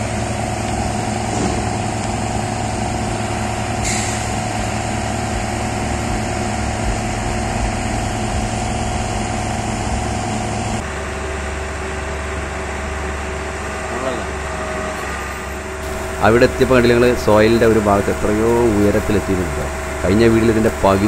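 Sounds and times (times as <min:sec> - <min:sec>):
engine humming: 0:00.0 - 0:10.8, 0:15.6 - 0:21.0
high hiss: 0:15.8 - 0:21.0.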